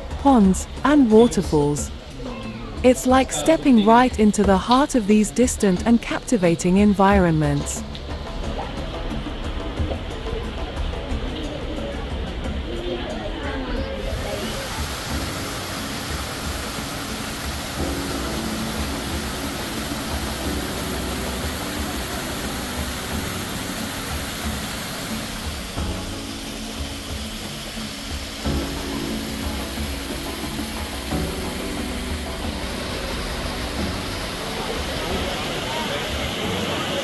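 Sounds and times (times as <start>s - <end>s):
slow sustained chords: 14.0s - 37.0s.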